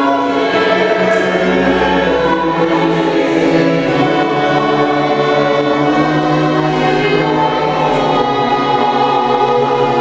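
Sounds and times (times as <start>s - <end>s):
small choir singing: 0.0s - 10.0s
string ensemble: 0.0s - 10.0s.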